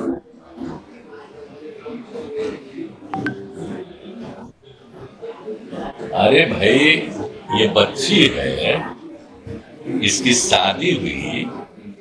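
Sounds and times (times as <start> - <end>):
murmur of voices: 0.0 - 12.0
two-tone electronic beep: 3.2 - 3.6.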